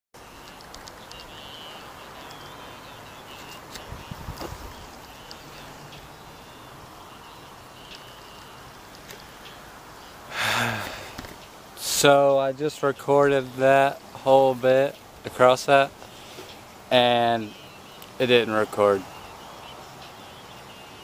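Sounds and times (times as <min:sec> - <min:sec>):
bird chirps: 0:00.2 - 0:11.5, 0:13.3 - 0:21.0
background hiss: 0:00.2 - 0:21.0.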